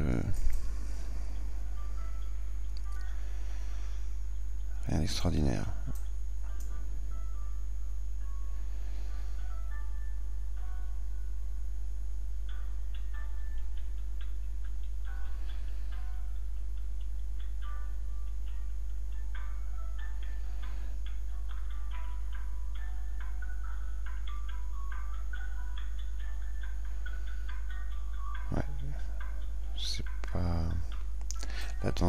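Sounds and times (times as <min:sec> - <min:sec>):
low electrical hum: 0:00.0 - 0:32.0.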